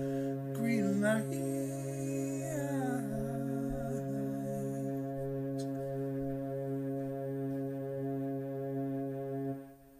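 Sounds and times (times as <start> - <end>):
electronic keyboard chord: 0.0 - 9.9.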